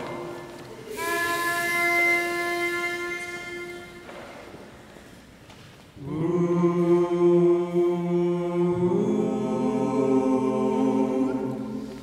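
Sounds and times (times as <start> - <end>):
pitch pipe tone: 0.0 - 4.4.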